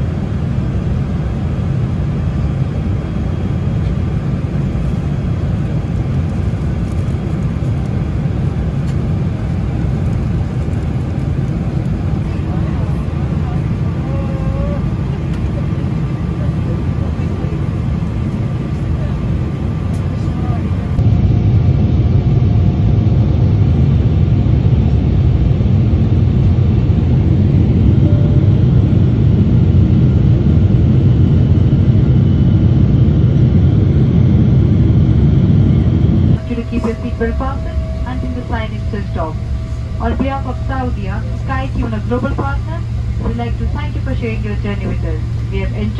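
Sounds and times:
airliner cabin rumble: 0.0 - 45.9.

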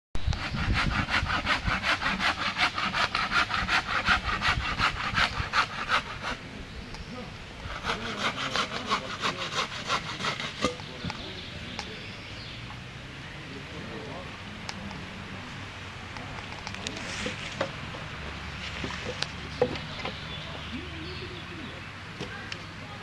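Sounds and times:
fast rhythmic scraping: 0.4 - 6.4, 7.7 - 10.9.

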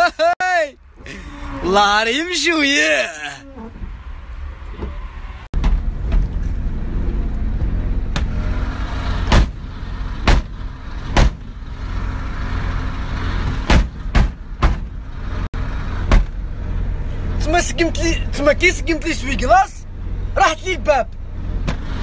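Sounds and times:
road and engine rumble: 0.0 - 22.0
sharp knocks: 9.3 - 9.6, 10.2 - 11.5, 13.6 - 14.9, 16.1 - 16.4.

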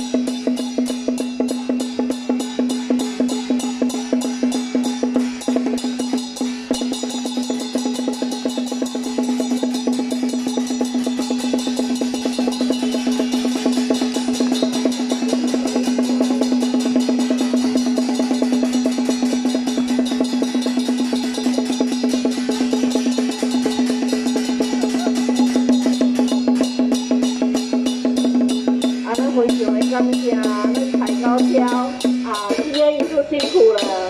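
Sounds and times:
drums struck in fast rhythm: 0.0 - 34.0
steady ringing tone: 0.0 - 34.0.

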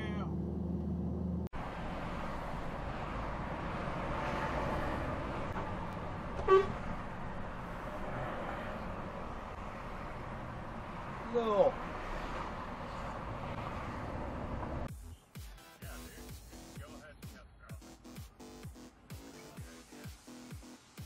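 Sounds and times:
truck road and engine noise: 0.0 - 15.2
truck horn toot: 6.4 - 7.0.

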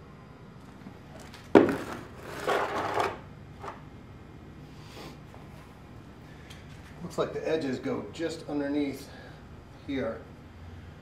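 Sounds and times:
wood scraping and rubbing: 1.6 - 3.8.

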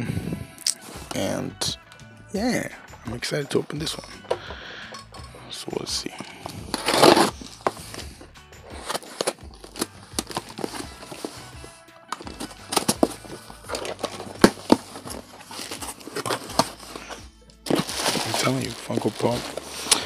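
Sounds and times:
cardboard box being opened: 6.4 - 8.0, 8.8 - 20.0.

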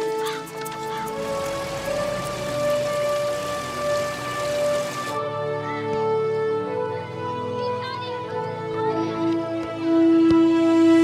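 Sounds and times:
hiss-like wash of noise: 1.0 - 5.2.

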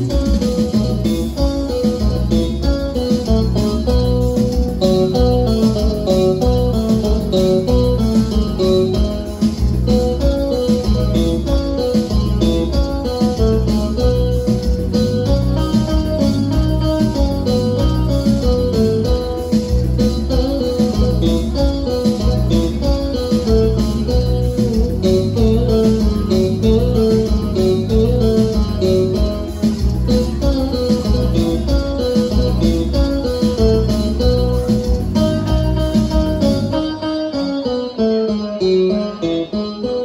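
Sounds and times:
bass: 0.0 - 37.2
live dance band playing: 0.0 - 40.0
plucked guitar melody: 0.0 - 40.0.

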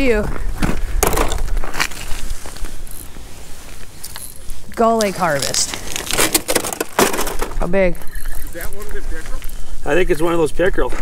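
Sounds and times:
crunches and scrapes on ice: 1.2 - 2.8, 3.6 - 7.5
ice cracking: 4.8 - 7.6.

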